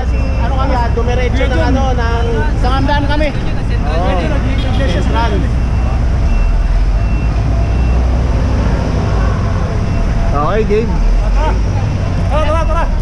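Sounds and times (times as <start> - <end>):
bus running: 0.0 - 13.0
city road traffic rumble: 0.0 - 13.0.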